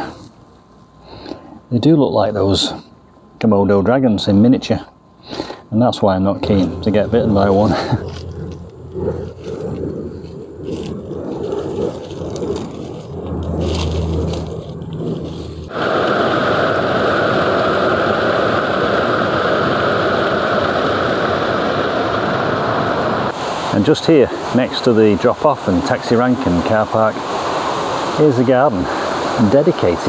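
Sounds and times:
low hum: 0.0s - 28.2s
rustling and scraping: 7.4s - 15.7s.

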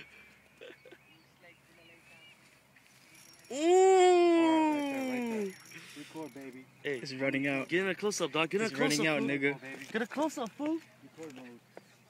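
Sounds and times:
man laughing: 0.6s - 1.0s
man's drawn-out ooh: 3.5s - 5.5s.

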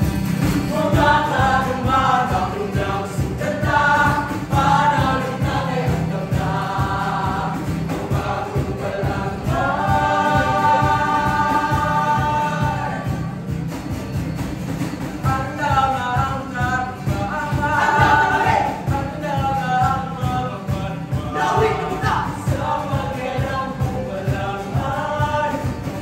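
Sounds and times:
group of voices singing: 0.0s - 13.7s, 15.2s - 26.0s.

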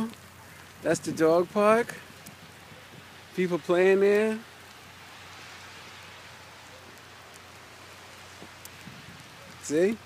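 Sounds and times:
falling snow hiss: 0.0s - 10.0s.

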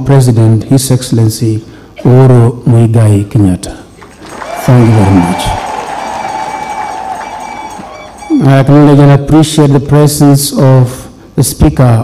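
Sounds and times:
audience applause: 4.0s - 8.3s
faint steady high tone: 6.5s - 9.0s.

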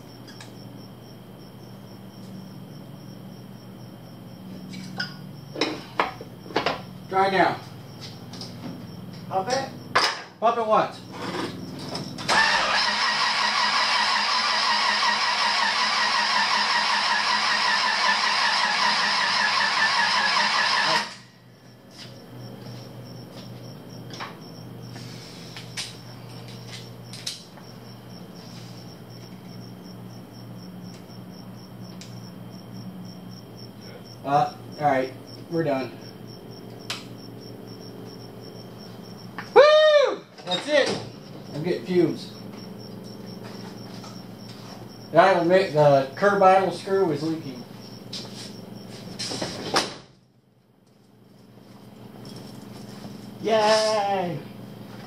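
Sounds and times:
starter motor cranking engine: 12.2s - 21.2s.

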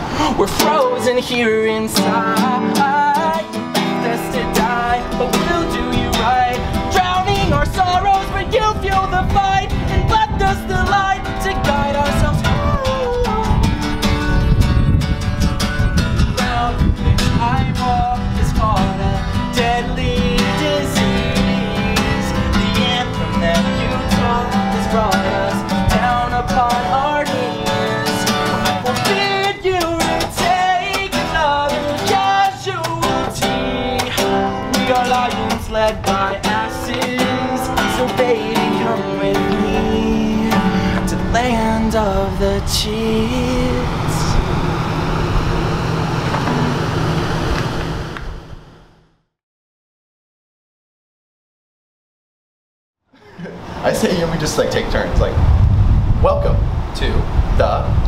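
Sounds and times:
man singing: 0.0s - 13.9s, 16.3s - 44.6s
acoustic guitar strumming: 0.0s - 49.0s.

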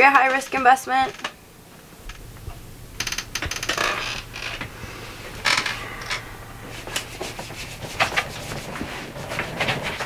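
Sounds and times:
scratchy rubbing noises: 6.6s - 10.0s.

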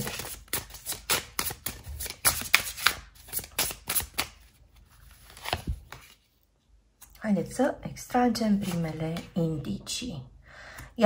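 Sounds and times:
cards being shuffled: 0.0s - 6.3s.

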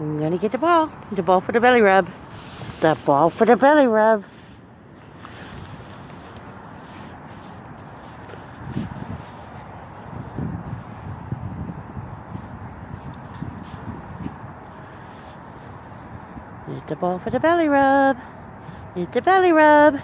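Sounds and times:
outdoor background hiss: 0.0s - 20.0s
wind buffeting microphone: 0.3s - 19.0s.

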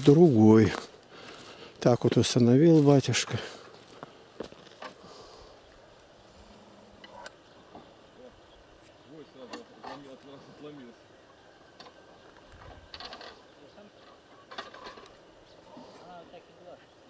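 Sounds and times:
distant men talking: 7.1s - 11.8s.

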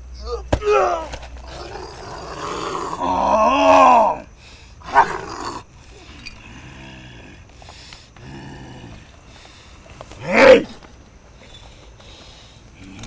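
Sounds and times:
man groaning roar: 0.2s - 5.6s, 10.2s - 10.8s
man moaning: 0.2s - 5.6s, 10.2s - 10.8s
man sharp cry: 10.2s - 10.7s.

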